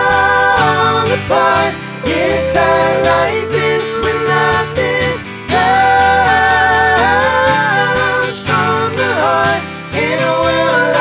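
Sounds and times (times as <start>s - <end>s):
men singing in harmony: 0.0s - 11.0s
strummed acoustic guitar: 0.0s - 11.0s.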